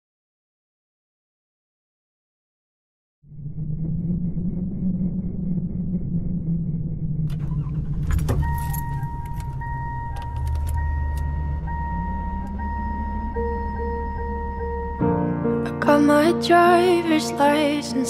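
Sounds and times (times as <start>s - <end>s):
car engine idling: 5.5s - 15.8s
soft held tone: 6.7s - 15.4s
clicks: 7.3s - 14.1s
car warning chime: 7.4s - 15.3s
keys jangling: 8.0s - 9.6s.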